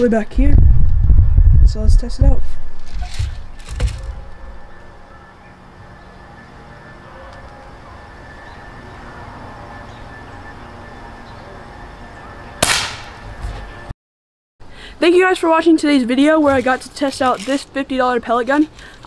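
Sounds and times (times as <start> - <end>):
air rifle shot: 12.6 - 13.2.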